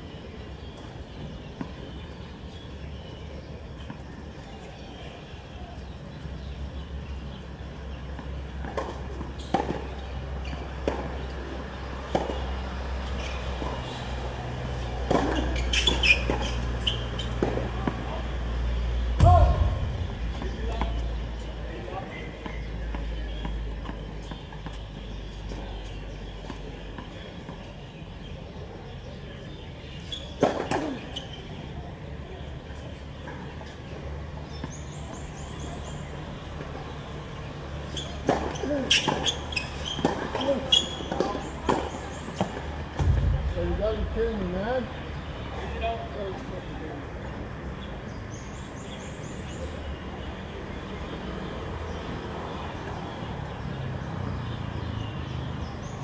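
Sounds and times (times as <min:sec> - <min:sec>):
tennis ball bouncing and struck: 0:15.0 - 0:18.0, 0:19.2 - 0:25.2, 0:38.2 - 0:45.7
player shouting: 0:19.2 - 0:20.0
low rumble: 0:19.2 - 0:21.7, 0:43.0 - 0:45.6.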